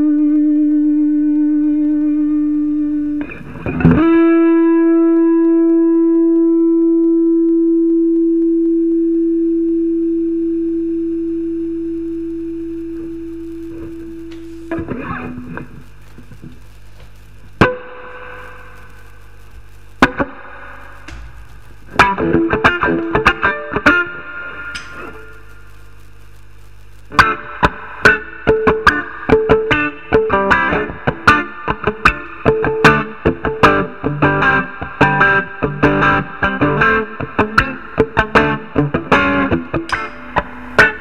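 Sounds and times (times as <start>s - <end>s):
overdriven electric blues guitar: 0.0s - 41.0s.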